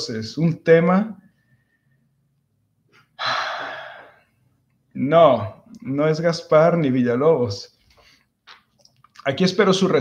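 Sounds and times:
man sighing: 0:03.2 - 0:04.2.

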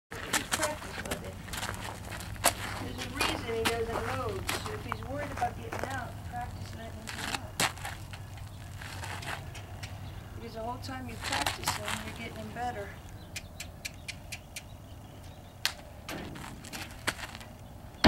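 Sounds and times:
steady low hum: 0:00.1 - 0:18.0
woman speaking softly: 0:02.8 - 0:07.6, 0:10.4 - 0:13.0.

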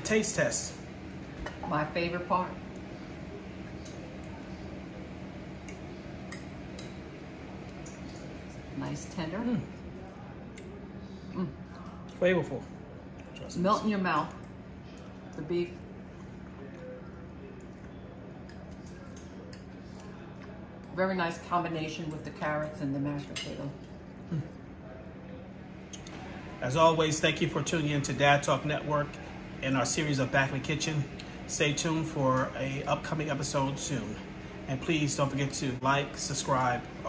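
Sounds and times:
low room hum: 0:00.0 - 0:37.0.

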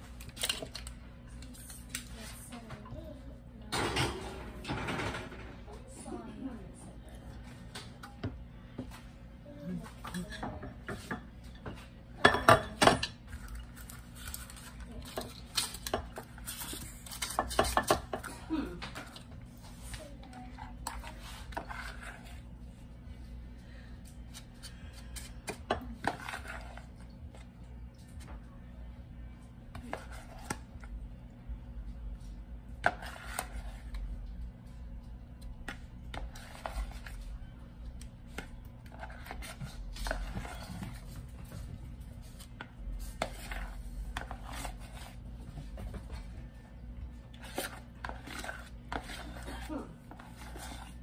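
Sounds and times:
steady low hum: 0:00.0 - 0:51.0
kitchen utensils and dishes clattering: 0:03.6 - 0:06.1, 0:10.0 - 0:19.3.

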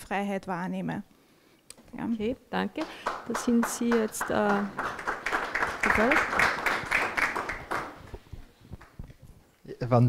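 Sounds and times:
audience applause: 0:02.8 - 0:08.2.

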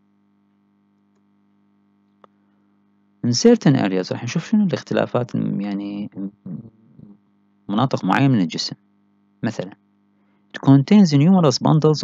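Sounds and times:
faint electrical hum: 0:00.0 - 0:12.0
man lecturing: 0:03.2 - 0:07.1, 0:07.7 - 0:08.8, 0:09.4 - 0:09.8, 0:10.6 - 0:12.0.

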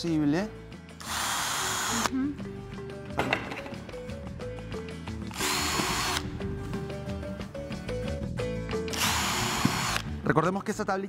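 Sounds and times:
background music: 0:00.0 - 0:11.0
cordless drill whining into wood: 0:01.0 - 0:02.1, 0:05.3 - 0:06.2, 0:08.9 - 0:10.1.

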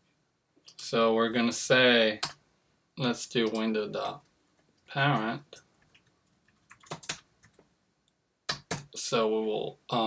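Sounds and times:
computer keyboard clicks: 0:05.8 - 0:07.6.

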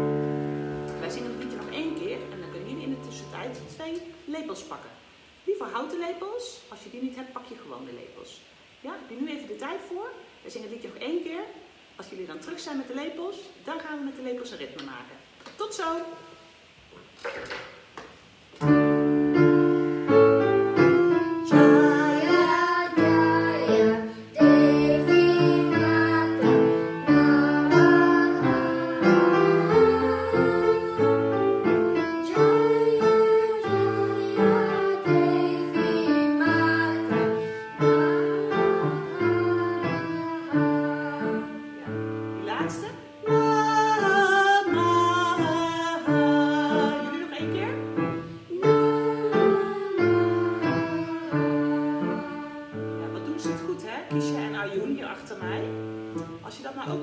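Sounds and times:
piano playing children's song: 0:00.0 - 0:04.0, 0:18.6 - 0:57.0
girl and woman singing: 0:21.1 - 0:42.0, 0:43.2 - 0:47.8, 0:48.4 - 0:53.4.

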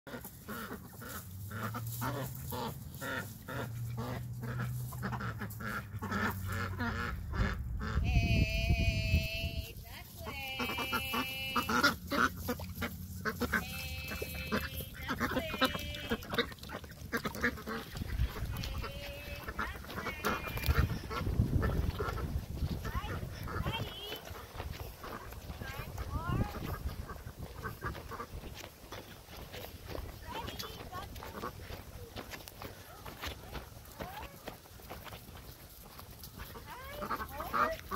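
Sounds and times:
long high wavering duck calls: 0:00.1 - 0:08.5, 0:10.2 - 0:32.0, 0:36.4 - 0:37.9
ducks quacking and chattering: 0:00.1 - 0:37.9.

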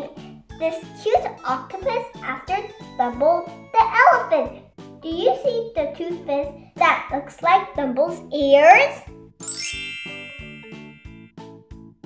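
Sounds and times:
light background music: 0:00.0 - 0:12.0
sparkle chimes sweep: 0:09.4 - 0:11.2.

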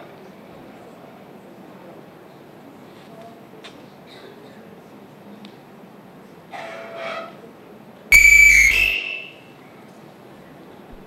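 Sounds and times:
loud electronic tone: 0:08.2 - 0:09.4.

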